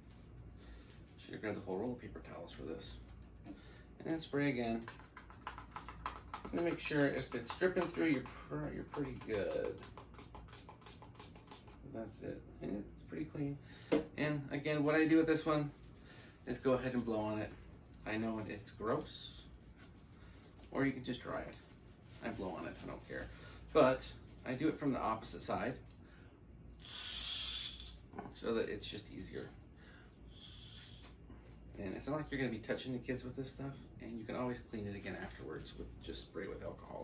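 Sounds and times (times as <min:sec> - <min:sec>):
breathy hiss of air: 0:26.8 - 0:28.1, 0:29.8 - 0:31.4.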